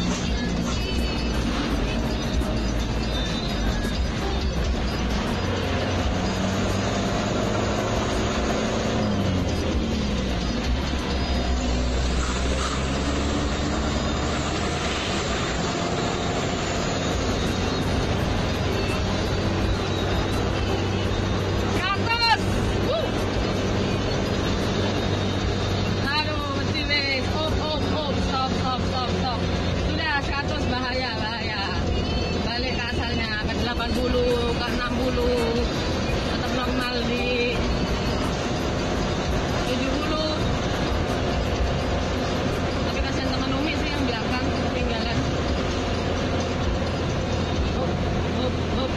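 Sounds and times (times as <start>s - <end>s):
music playing: 0.0s - 48.9s
vehicle engine and road noise: 0.0s - 48.9s.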